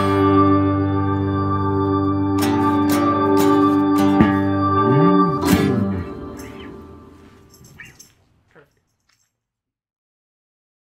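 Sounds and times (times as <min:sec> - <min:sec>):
band chord led by organ: 0:00.0 - 0:07.4
brief squeaky sounds: 0:07.5 - 0:09.2.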